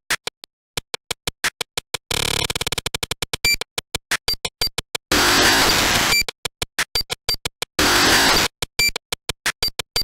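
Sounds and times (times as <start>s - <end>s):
harsh noise burst: 5.1s - 6.2s, 7.8s - 8.5s.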